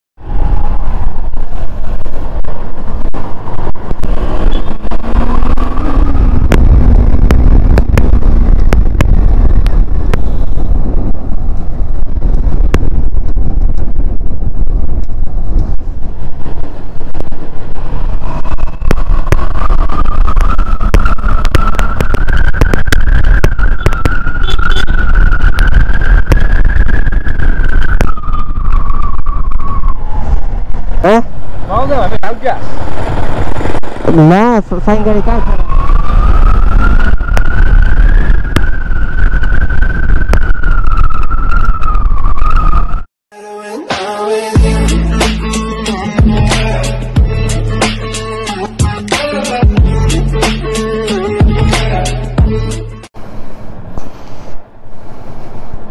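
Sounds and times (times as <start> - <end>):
wind rush on microphone: 0.2 - 43.1.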